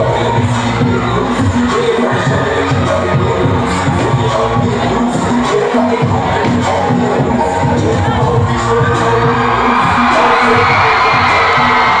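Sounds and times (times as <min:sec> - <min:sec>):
crowd cheering and shouting: 0:00.0 - 0:12.0
dance music over loudspeakers: 0:00.0 - 0:12.0.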